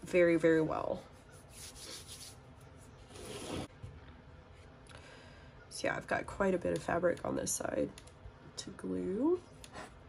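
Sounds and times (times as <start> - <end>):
hands brushing fabric: 1.2 - 3.0.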